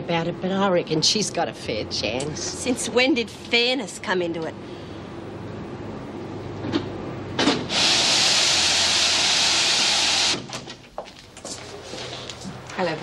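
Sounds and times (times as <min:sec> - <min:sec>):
steam press hissing: 0:07.4 - 0:10.4.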